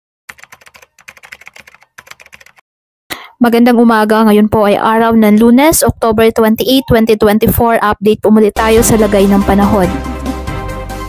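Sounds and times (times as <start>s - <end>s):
keyboard typing clicks: 0.3s - 2.6s.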